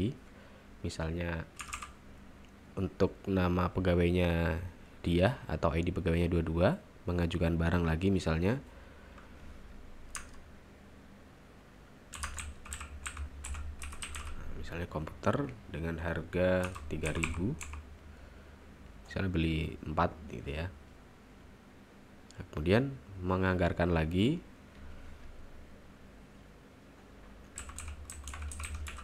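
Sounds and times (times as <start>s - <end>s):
faint low hum: 0.0s - 29.0s
computer keyboard typing: 1.6s - 2.0s, 10.1s - 10.4s, 12.1s - 14.4s, 16.6s - 17.8s, 27.5s - 29.0s.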